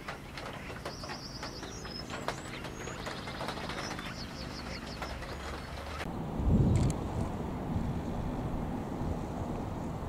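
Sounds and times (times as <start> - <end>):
small birds chirping: 0.0 - 6.1.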